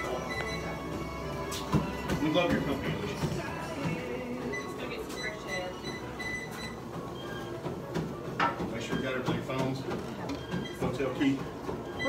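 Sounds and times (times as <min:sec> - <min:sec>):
treadmill running: 0:00.0 - 0:12.0.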